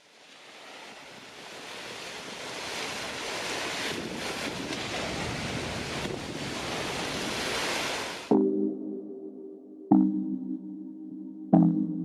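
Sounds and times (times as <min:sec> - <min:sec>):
ocean surf washing ashore: 0:00.0 - 0:08.3.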